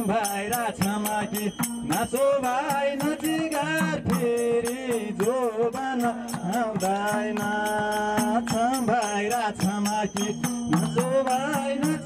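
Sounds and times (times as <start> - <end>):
jingling percussion: 0.0 - 12.0
person singing folk melody: 0.0 - 12.0.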